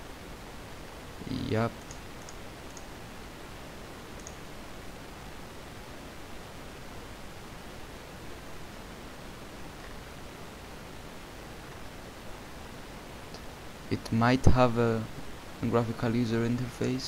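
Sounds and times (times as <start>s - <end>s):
steady hiss: 0.0s - 17.0s.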